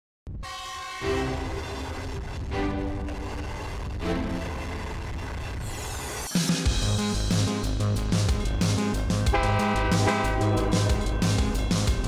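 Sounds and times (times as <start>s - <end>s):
train horn: 0.4s - 2.1s, 9.3s - 11.1s
passing train rumble: 0.9s - 12.0s.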